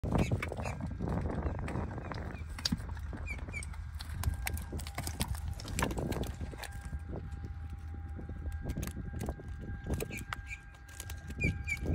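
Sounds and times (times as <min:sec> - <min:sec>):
low steady rumble: 0:00.0 - 0:11.9.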